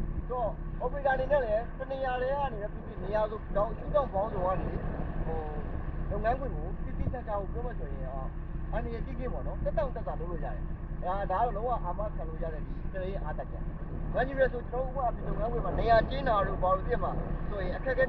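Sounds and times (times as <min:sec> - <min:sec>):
diesel truck engine droning: 0:00.0 - 0:18.0.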